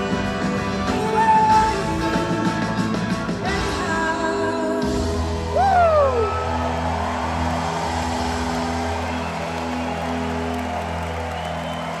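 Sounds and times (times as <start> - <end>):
audience cheering and whooping: 5.5 - 12.0.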